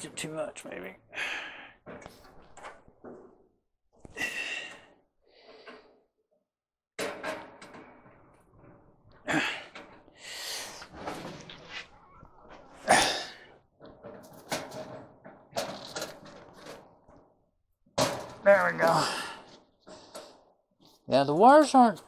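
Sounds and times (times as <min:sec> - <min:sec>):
hands rattling wires: 0:07.0 - 0:22.0.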